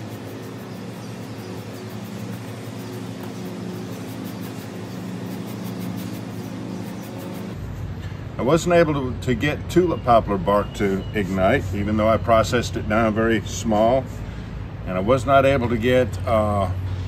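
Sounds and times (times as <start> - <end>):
air conditioner unit humming: 0.0 - 17.0.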